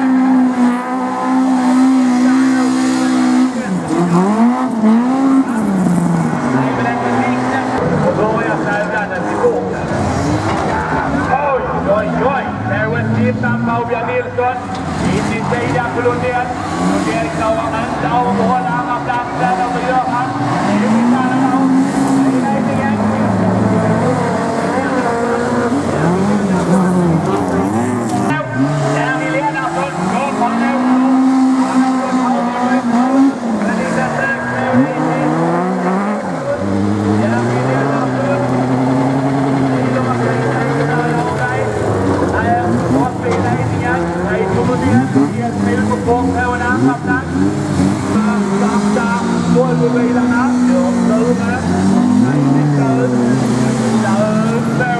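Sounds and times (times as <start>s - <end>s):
race car engines revving: 0.0s - 54.9s.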